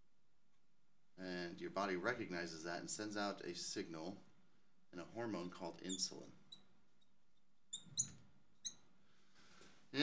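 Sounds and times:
marker squeaking on glass: 5.9 - 8.8.

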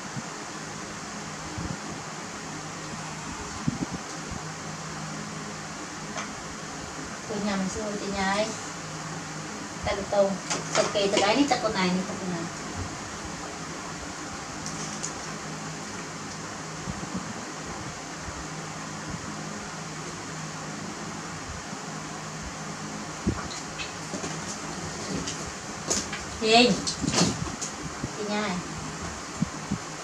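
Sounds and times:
low hum: 0.0 - 30.0
room noise hiss: 0.0 - 30.0.

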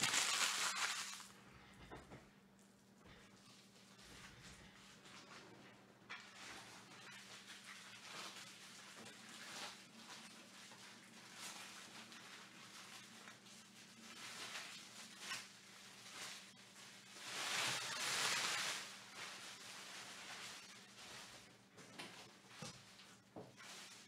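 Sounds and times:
trading cards and wrappers rustling: 0.0 - 1.3.

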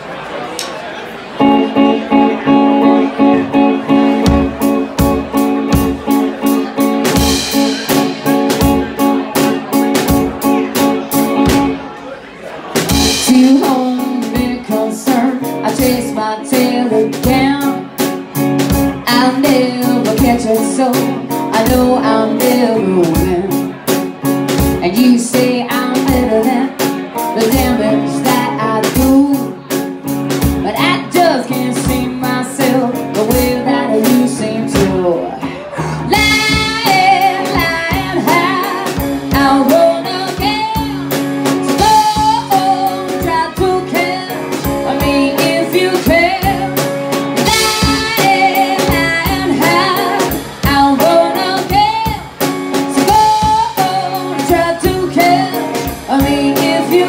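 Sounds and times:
drum kit beat: 1.4 - 11.8, 12.8 - 35.2, 35.8 - 57.0
electric guitar: 1.4 - 12.0, 12.6 - 57.0
woman singing lead: 12.9 - 18.1, 19.0 - 23.8, 24.6 - 29.6, 30.4 - 57.0.

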